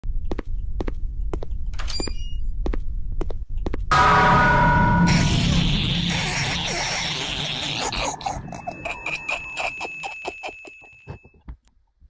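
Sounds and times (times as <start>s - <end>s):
loud sound: 3.9s - 9.6s.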